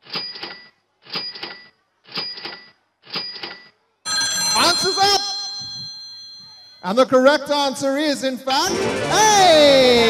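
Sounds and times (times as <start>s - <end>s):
ringing bell-like alarm: 4.1s - 6.9s.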